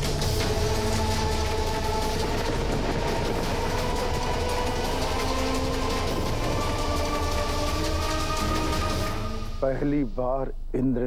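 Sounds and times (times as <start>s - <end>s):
dramatic score held notes: 0.0s - 10.6s
low rumbling drone: 0.0s - 11.0s.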